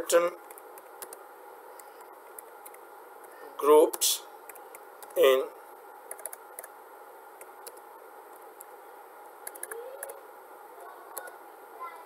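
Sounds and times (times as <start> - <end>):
faint steady hum: 0.0 - 12.0
keyboard keys clicking: 6.1 - 6.7, 9.4 - 10.2.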